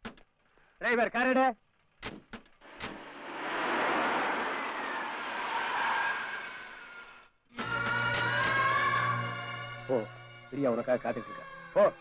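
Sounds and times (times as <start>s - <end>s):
car pulling away: 2.6s - 7.3s
music: 6.7s - 12.0s.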